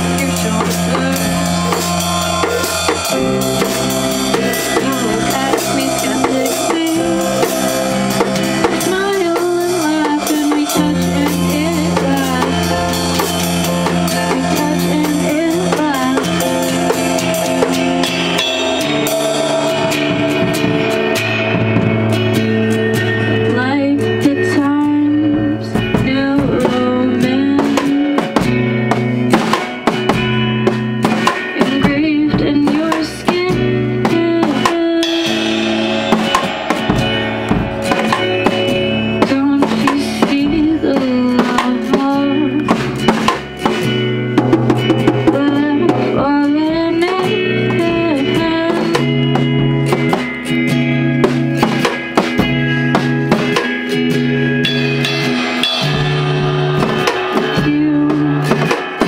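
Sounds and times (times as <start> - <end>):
electric keyboard chords: 0.0 - 26.1
drum kit with cymbal hits: 0.0 - 59.0.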